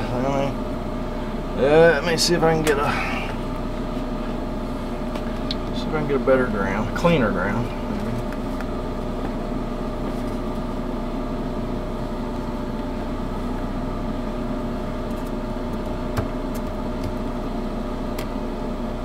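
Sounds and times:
motor humming: 0:00.0 - 0:19.0.

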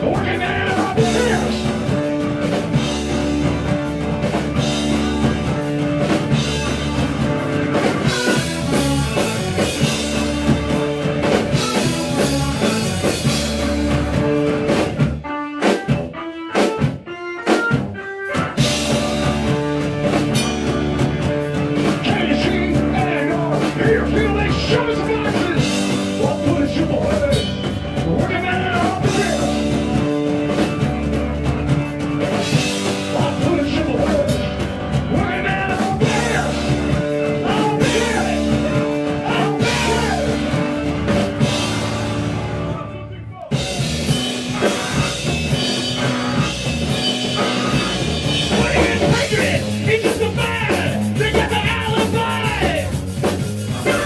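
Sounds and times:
drum kit: 0:00.0 - 0:54.0
electric bass: 0:00.0 - 0:54.0
organ: 0:00.0 - 0:54.0.

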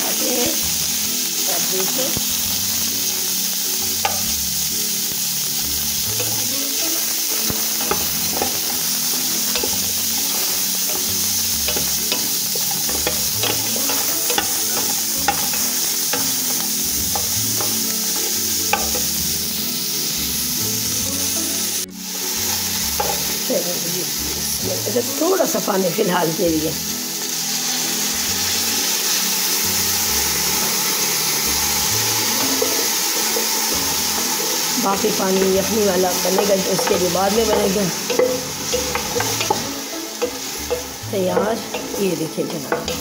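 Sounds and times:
meat sizzling in oil: 0:00.0 - 0:43.0.

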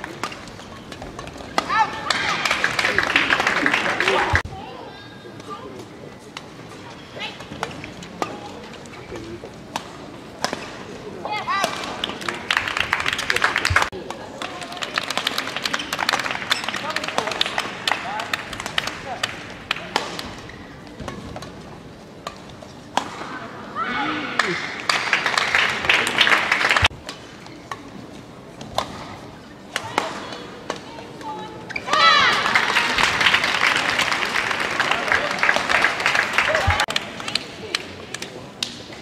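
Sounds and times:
crowd chatter: 0:00.0 - 0:39.0.

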